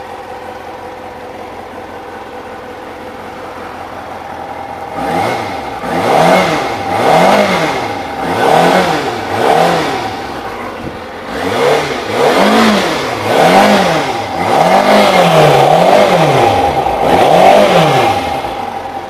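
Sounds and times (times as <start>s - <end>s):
motorcycle engine revving: 0.0s - 19.0s.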